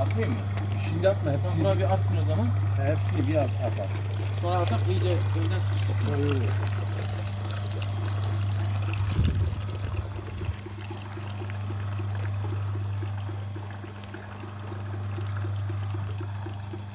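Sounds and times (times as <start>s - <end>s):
juice pouring into plastic bucket: 0.0s - 16.9s
low motor hum: 0.0s - 16.9s.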